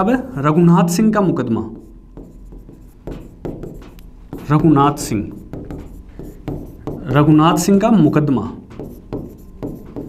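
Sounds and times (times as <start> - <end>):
marker scratching on whiteboard: 1.7 - 10.0.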